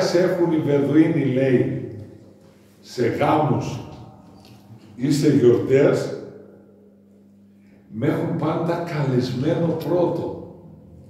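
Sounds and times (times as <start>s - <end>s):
man speaking: 0.0s - 2.0s, 2.8s - 4.2s, 4.8s - 6.2s, 7.9s - 10.4s
faint low hum: 0.0s - 11.0s.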